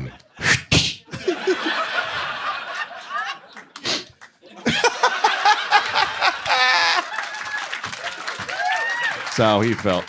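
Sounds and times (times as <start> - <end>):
laughter: 1.1 - 3.8, 4.4 - 7.3.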